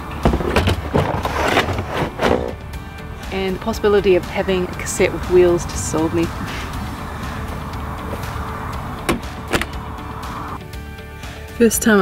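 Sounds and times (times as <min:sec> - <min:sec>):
plastic cassette sliding and scraping: 0:00.3 - 0:02.6.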